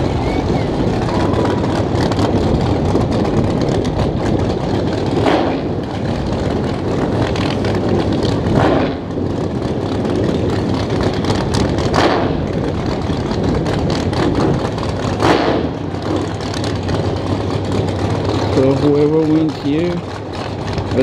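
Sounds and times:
race car engines idling: 0:00.0 - 0:21.0
race engines revving: 0:00.0 - 0:21.0.

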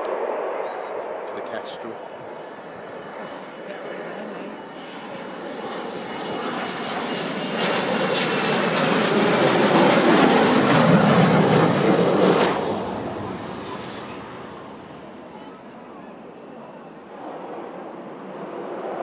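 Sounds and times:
jet engines on landing approach: 0:00.0 - 0:19.0.

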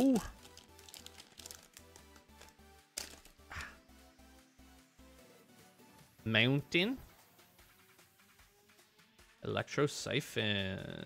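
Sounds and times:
foil wrapper crinkling: 0:00.0 - 0:03.5
quiet background music: 0:00.0 - 0:11.0.

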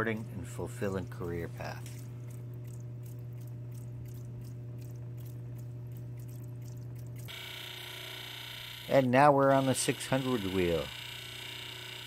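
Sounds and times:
grinding machine motor humming: 0:07.2 - 0:12.0.

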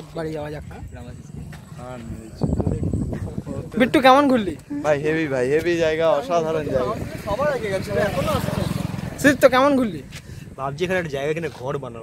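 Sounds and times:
men calling out: 0:03.4 - 0:10.2
motorcycle engine running: 0:06.7 - 0:10.2.

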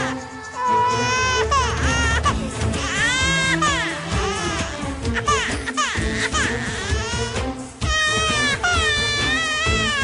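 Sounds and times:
baby crying: 0:00.5 - 0:10.0.

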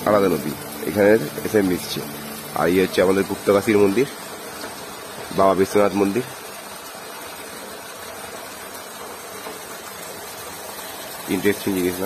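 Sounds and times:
water pouring into a pool: 0:00.0 - 0:12.0.

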